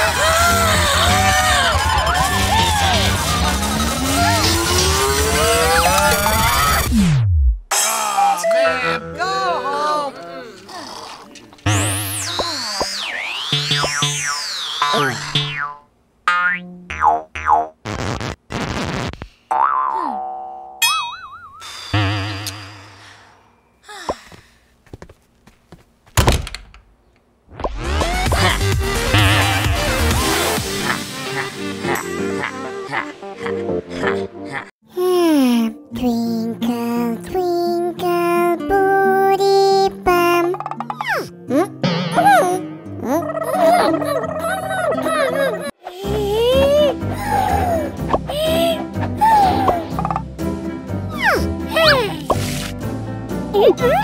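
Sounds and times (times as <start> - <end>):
cartoonish gibbering voice effect: 3.2 - 6.9, 14.8 - 15.5, 40.9 - 47.7, 51.1 - 52.4
wobbling warbly tones: 11.7 - 15.8
cartoon boing sounds: 11.7 - 17.8, 19.5 - 22.8, 40.6 - 44.5
slide-whistle glides: 12.1 - 15.4
rising and falling whistle: 12.2 - 15.2.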